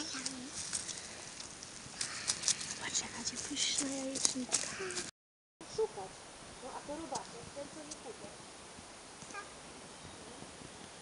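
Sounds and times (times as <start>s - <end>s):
footsteps on forest floor: 0.0s - 5.1s.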